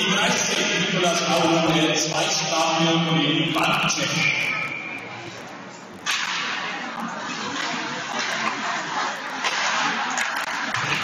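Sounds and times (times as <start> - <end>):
hockey stick clacks: 6.0 - 11.0
skates scraping ice: 6.0 - 11.0.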